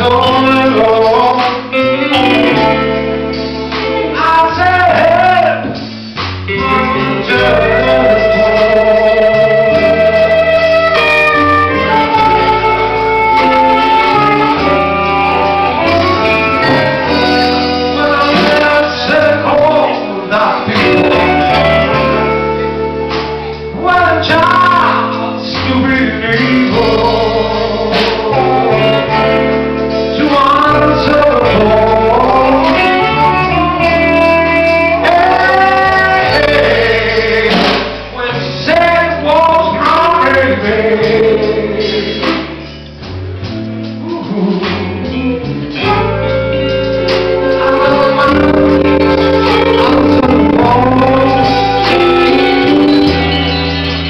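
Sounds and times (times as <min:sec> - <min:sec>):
live blues band playing: 0:00.0 - 0:54.0
person singing: 0:00.0 - 0:54.0
steady bass line: 0:00.0 - 0:54.0
lead guitar sustained notes: 0:01.7 - 0:05.8, 0:06.5 - 0:39.8, 0:42.9 - 0:54.0.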